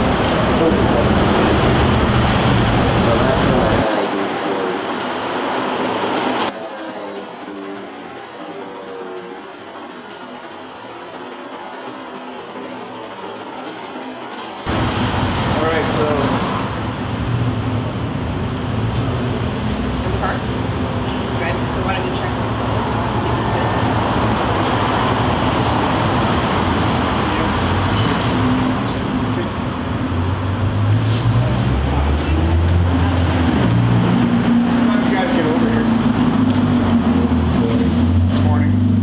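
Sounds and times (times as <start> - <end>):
indistinct voices: 0.0 - 39.0
passing traffic: 0.0 - 39.0.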